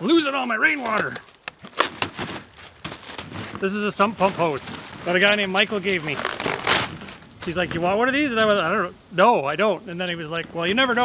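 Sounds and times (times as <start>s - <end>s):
plastic bag crinkling: 0.5s - 8.0s.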